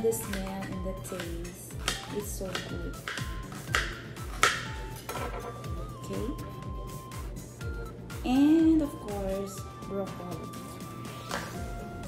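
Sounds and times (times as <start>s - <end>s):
background music with beat: 0.0s - 12.0s
knife chopping on cutting board: 0.2s - 5.5s.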